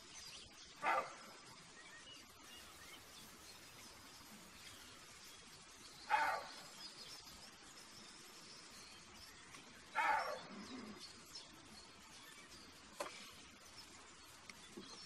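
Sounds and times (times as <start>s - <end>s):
deer barking: 0.8s - 1.2s, 6.1s - 6.6s, 10.0s - 10.6s.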